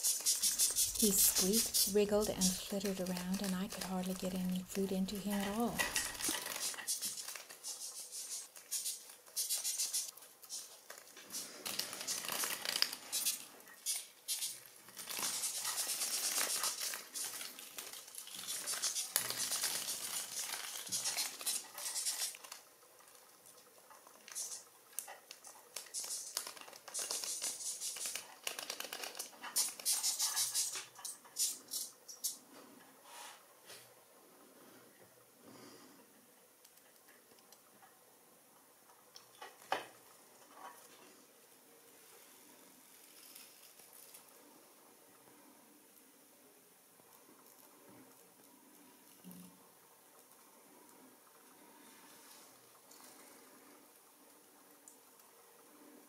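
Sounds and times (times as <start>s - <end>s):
moth squeaking in raspy pulses: 0.0s - 4.2s, 5.3s - 11.4s, 13.1s - 14.6s, 15.2s - 17.4s, 18.3s - 22.4s, 24.3s - 24.6s, 25.9s - 28.2s, 29.5s - 32.4s.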